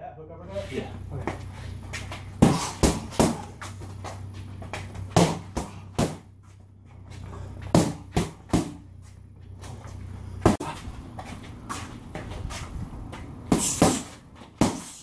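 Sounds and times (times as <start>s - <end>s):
boxing gloves hitting focus mitts: 1.2s - 6.4s, 7.6s - 8.9s, 10.4s - 15.0s.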